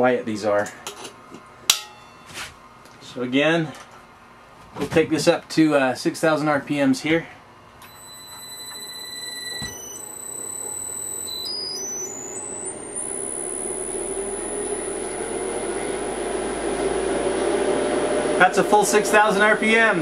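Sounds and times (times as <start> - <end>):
low hum: 7.8 - 19.2
electric motor high whine: 7.8 - 19.7.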